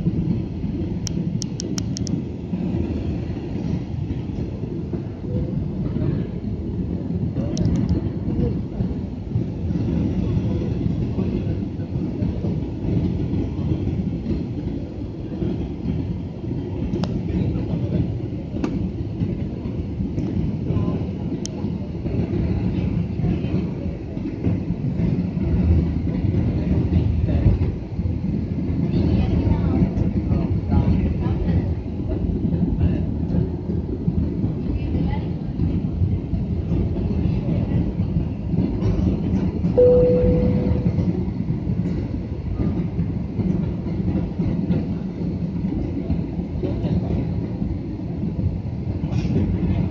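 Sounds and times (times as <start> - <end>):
jet engine and airflow rumble: 0.0 - 49.9
steady tone: 39.8 - 41.4.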